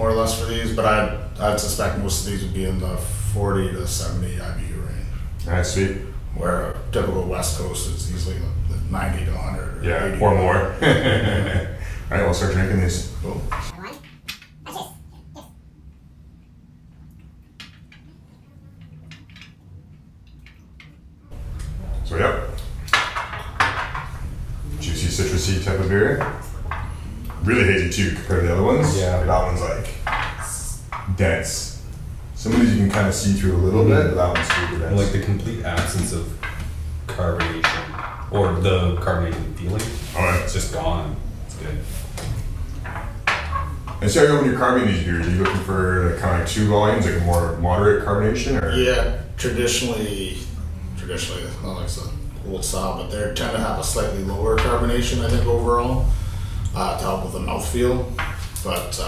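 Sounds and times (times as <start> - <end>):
low hum: 0.0 - 13.8, 15.0 - 59.0.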